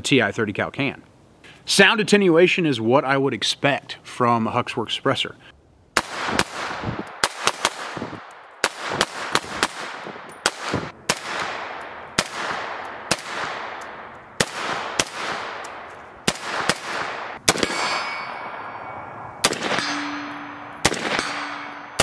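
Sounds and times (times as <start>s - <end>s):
suppressed rifle shots cracking: 6.0s - 18.1s, 19.4s - 22.0s
low ringing of struck steel: 17.5s - 22.0s.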